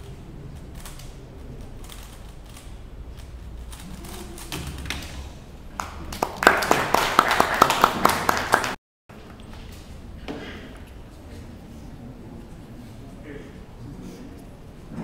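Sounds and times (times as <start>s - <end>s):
applause with sharp claps: 5.7s - 8.8s.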